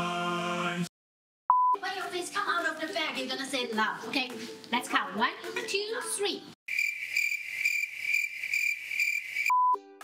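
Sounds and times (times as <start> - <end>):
cricket chirping: 6.7 - 9.5.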